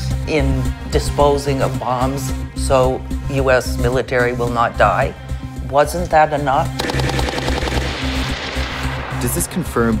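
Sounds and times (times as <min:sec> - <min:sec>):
machine gun automatic fire: 0:06.8 - 0:08.6.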